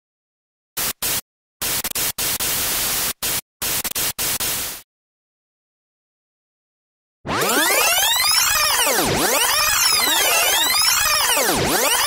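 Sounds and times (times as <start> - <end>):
loud static hiss bursts: 0.8 - 4.8.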